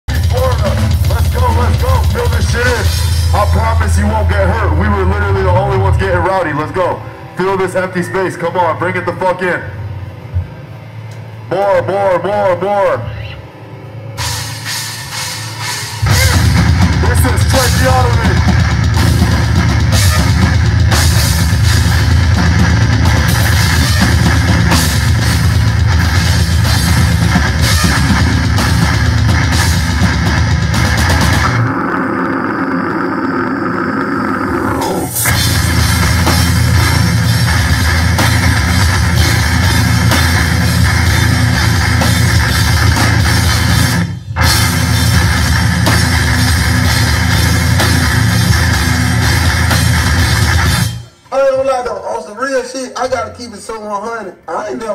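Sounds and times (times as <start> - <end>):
heavy metal band playing live: 0.1 - 8.6, 14.1 - 51.3.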